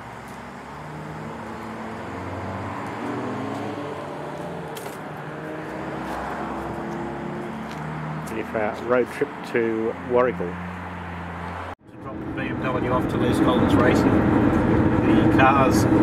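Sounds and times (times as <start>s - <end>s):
motor vehicle engine hum: 0.0s - 16.0s.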